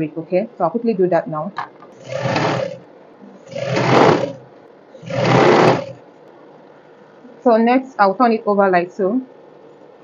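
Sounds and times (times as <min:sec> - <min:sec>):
sewing machine stitching: 0:02.0 - 0:02.8, 0:03.4 - 0:06.0.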